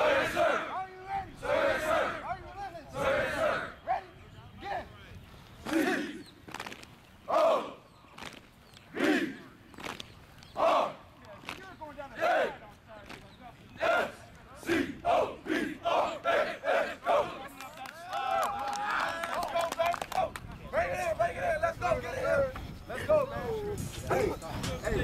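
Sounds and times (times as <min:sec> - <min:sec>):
overlapping voices yelling: 0:00.0 - 0:03.8, 0:05.6 - 0:06.3, 0:07.3 - 0:07.8, 0:10.6 - 0:13.2, 0:13.8 - 0:21.2.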